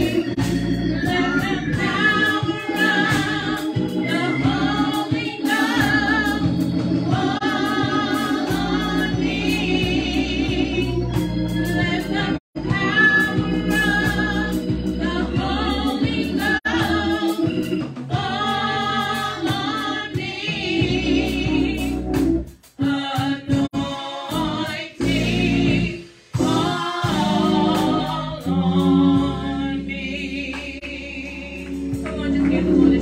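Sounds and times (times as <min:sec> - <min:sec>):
woman singing gospel: 0:00.0 - 0:22.2, 0:22.8 - 0:33.0
organ chords: 0:00.0 - 0:33.0.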